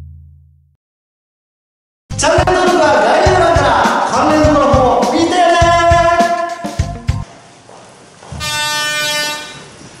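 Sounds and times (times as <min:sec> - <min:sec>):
horn-like toot: 0:08.3 - 0:09.8.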